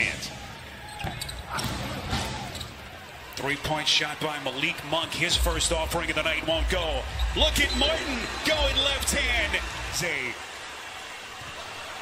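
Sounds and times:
low hum of arena: 0.0s - 12.0s.

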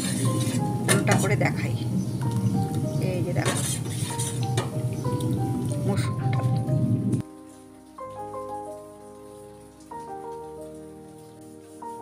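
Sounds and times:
food sizzling in a pan: 0.0s - 6.0s
mallet percussion background music: 4.4s - 8.7s.

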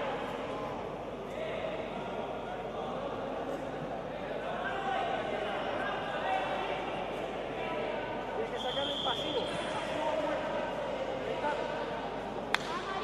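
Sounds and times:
voices talking in a hall: 0.0s - 13.0s
high whistle-like tone: 8.6s - 9.6s.

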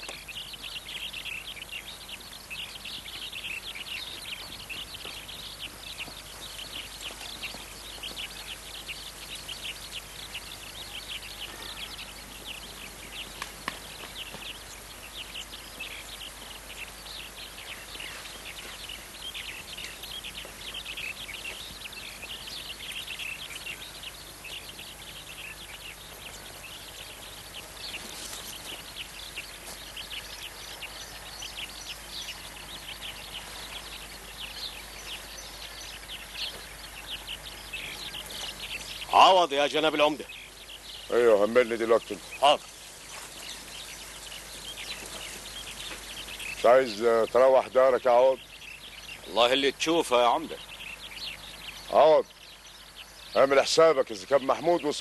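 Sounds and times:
small birds chirping: 0.0s - 55.0s.

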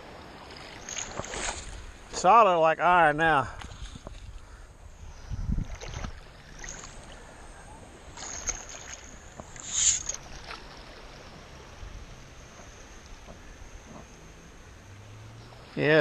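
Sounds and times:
shallow water splashing: 0.0s - 2.4s, 3.1s - 16.0s
sand scoop digging underwater: 9.6s - 10.2s.

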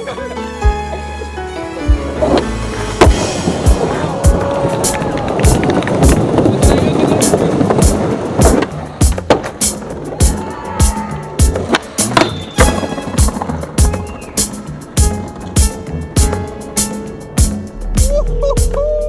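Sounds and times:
skateboard wheels rolling on wood: 1.9s - 17.5s
skateboard clacking: 2.1s - 17.2s
hip-hop track with drum beat: 3.0s - 19.0s.

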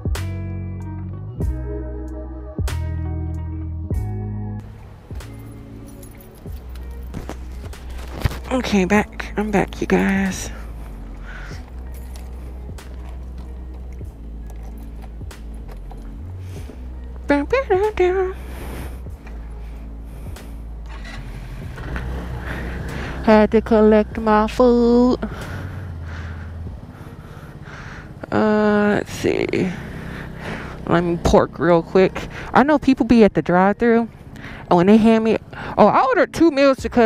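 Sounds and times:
background music: 0.0s - 37.0s
scooter engine running: 4.6s - 37.0s
keys jingling: 5.2s - 8.5s, 11.6s - 16.2s.

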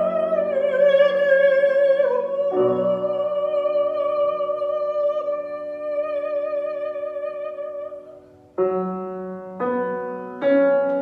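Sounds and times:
woman singing operatic note: 0.0s - 8.3s
grand piano chords: 0.0s - 11.0s.

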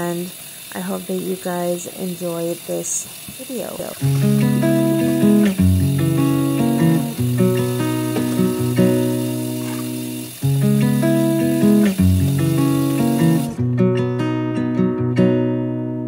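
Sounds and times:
faint steady hiss: 0.0s - 13.6s
acoustic guitar chords: 4.0s - 16.0s.

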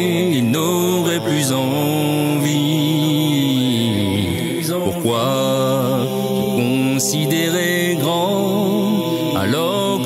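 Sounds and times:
a cappella chant singing: 0.0s - 10.0s.

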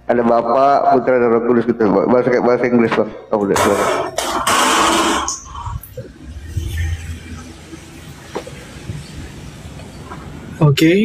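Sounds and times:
hissing rush of noise: 4.4s - 10.7s.

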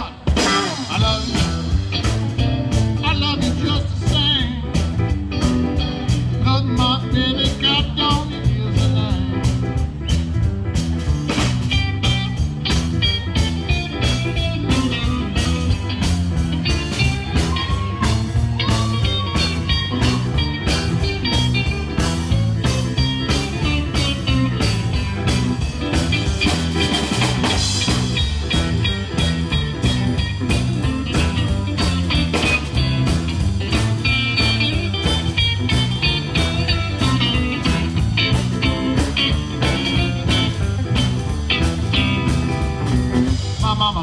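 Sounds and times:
bass guitar: 0.0s - 44.0s
drum kit steady beat: 0.0s - 44.0s
electric guitar: 0.0s - 44.0s.

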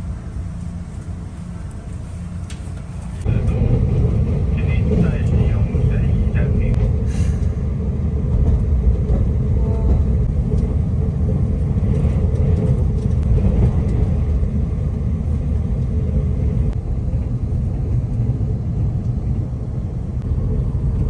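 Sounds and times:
train rumble inside carriage: 0.0s - 21.0s.

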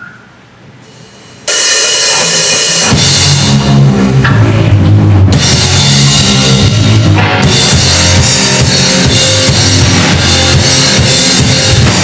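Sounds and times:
drum kit with crashing cymbals: 0.8s - 12.0s
hard rock band playing: 1.5s - 12.0s
bass and kick drum: 2.5s - 12.0s.

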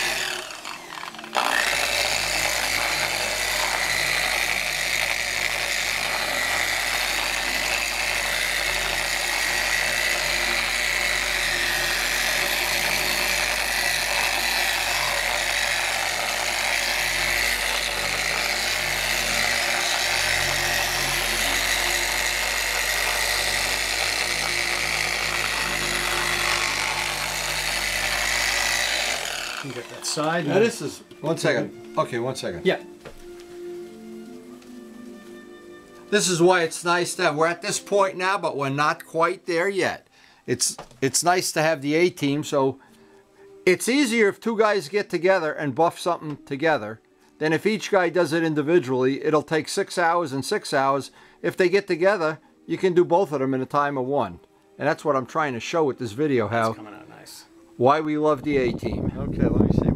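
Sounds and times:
electric polisher running: 0.0s - 30.7s.

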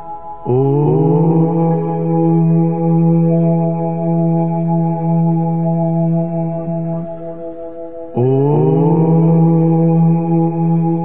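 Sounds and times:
deep sustained chanted note: 0.0s - 11.0s
meditation drone music: 0.0s - 11.0s.

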